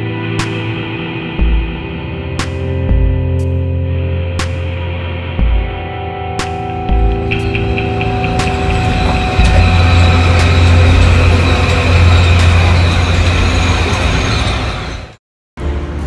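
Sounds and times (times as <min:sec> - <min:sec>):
train rumbling past: 0:06.9 - 0:16.0.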